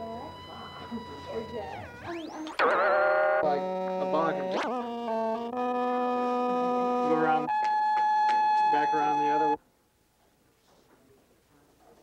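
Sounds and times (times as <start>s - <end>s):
synthesizer tones: 0.0s - 9.6s.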